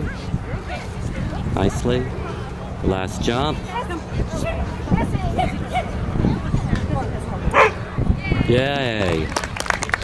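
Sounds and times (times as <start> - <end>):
background chatter: 0.0 - 10.0
dog barking: 7.5 - 7.8.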